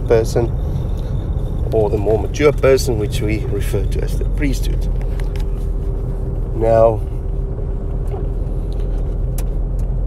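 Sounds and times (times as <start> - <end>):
speech: 0.0 - 0.5, 1.7 - 4.9, 6.6 - 7.1
constant hum tone: 0.0 - 10.0
low background rumble: 0.0 - 10.0.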